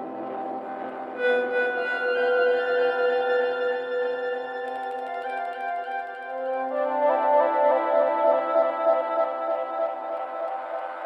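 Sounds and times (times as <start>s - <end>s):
slow ambient instrumental music: 0.0s - 11.0s.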